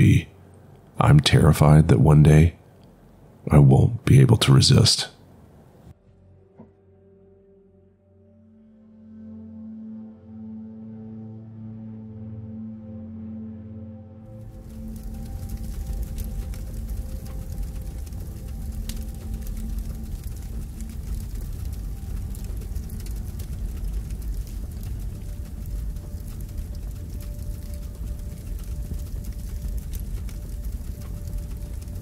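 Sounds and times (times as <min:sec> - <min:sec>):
deep rumbling drone: 0:07.6 - 0:32.0
crackles: 0:14.3 - 0:32.0.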